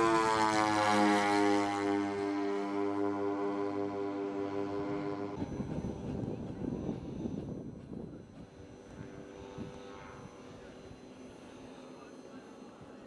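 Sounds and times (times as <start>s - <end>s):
model aircraft engines droning: 0.0s - 13.0s.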